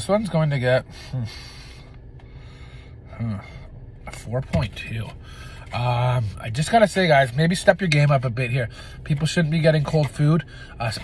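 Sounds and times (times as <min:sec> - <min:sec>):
low hum inside car cabin: 0:00.0 - 0:11.0.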